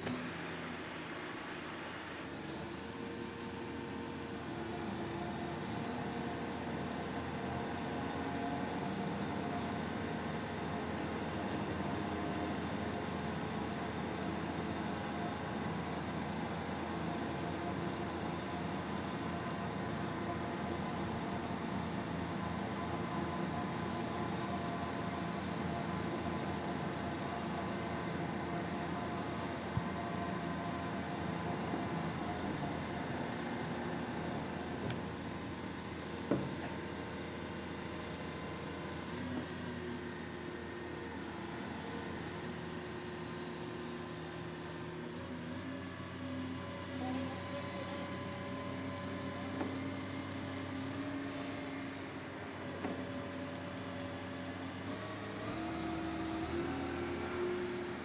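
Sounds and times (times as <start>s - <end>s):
diesel engine droning: 0.0s - 58.0s.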